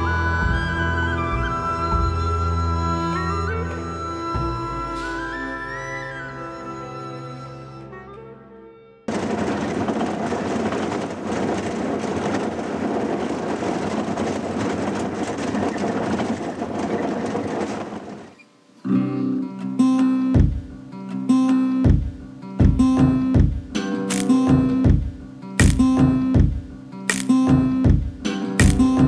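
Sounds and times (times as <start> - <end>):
engine and road noise in cabin: 9.1 - 18.4
plucked strummed guitar music: 18.8 - 29.0.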